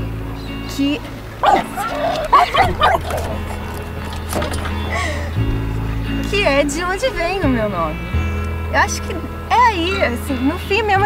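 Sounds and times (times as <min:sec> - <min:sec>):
background music: 0:00.0 - 0:11.0
small dog yipping and whining: 0:01.4 - 0:03.7.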